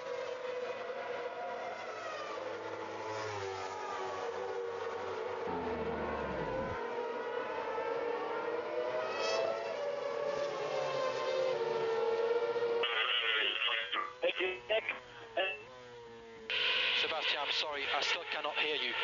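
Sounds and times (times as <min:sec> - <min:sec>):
racing engines droning: 0:00.0 - 0:19.0.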